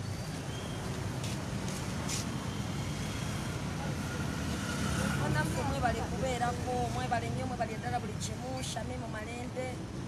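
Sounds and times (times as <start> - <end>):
low rumble of traffic: 0.0 - 10.0.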